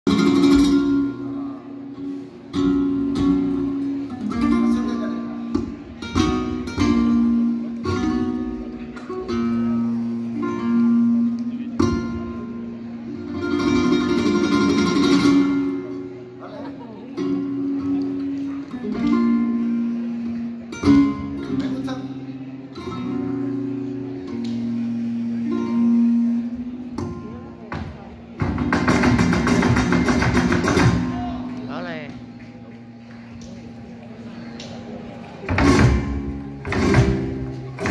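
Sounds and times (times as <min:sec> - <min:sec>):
acoustic guitar: 0:00.0 - 0:37.9.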